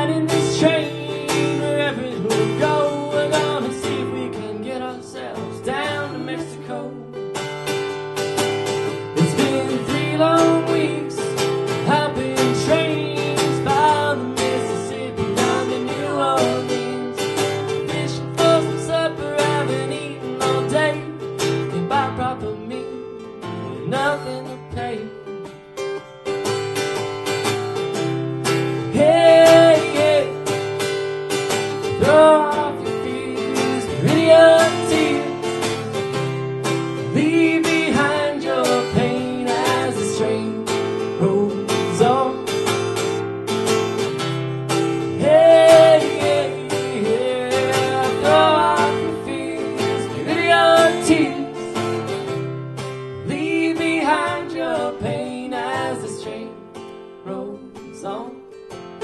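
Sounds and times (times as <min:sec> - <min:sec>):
person singing: 0:00.0 - 0:07.2, 0:09.0 - 0:25.4, 0:28.8 - 0:30.6, 0:31.8 - 0:36.0, 0:37.0 - 0:43.0, 0:45.1 - 0:52.2, 0:53.2 - 0:58.5
acoustic guitar strummed: 0:00.0 - 0:59.0.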